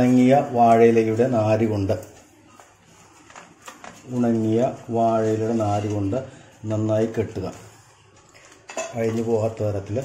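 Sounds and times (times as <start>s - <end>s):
handling leaf parcel on plastic plate: 0.0s - 10.0s.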